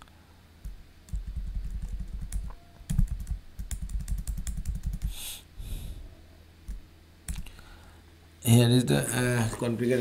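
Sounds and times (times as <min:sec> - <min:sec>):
computer keyboard typing: 0:01.1 - 0:05.2.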